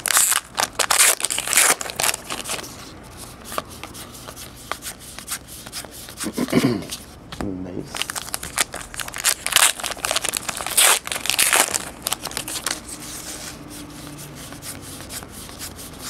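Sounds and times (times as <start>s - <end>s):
wrapper tearing and crinkling: 0.0s - 2.6s, 7.9s - 12.9s.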